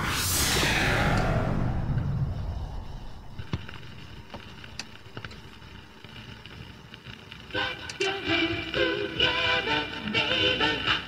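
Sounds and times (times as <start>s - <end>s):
whoosh: 0.0s - 5.7s
low rumble: 0.0s - 6.1s
vinyl record clicks and pops: 3.4s - 9.3s.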